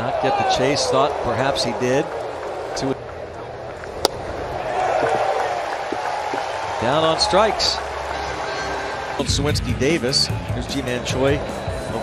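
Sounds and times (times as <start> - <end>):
stadium crowd cheering: 0.0 - 12.0
baseball popping into mitt: 3.9 - 4.3.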